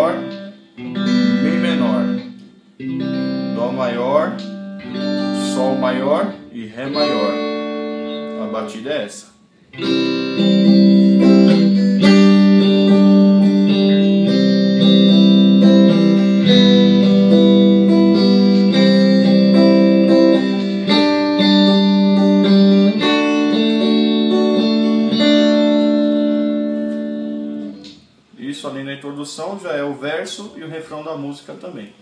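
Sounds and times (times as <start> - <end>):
electric guitar strumming chords: 0.0 - 9.0, 9.7 - 28.3.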